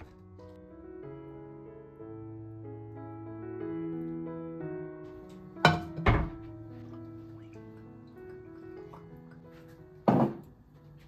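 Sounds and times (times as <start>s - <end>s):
background piano music: 0.0s - 11.0s.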